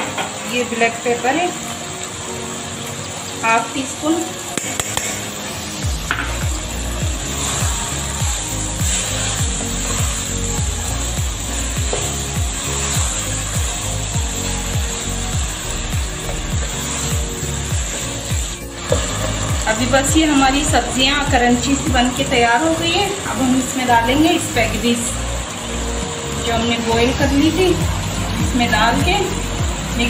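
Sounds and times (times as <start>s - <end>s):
background music beat: 4.4s - 30.0s
spatula scraping wok: 4.8s - 21.8s.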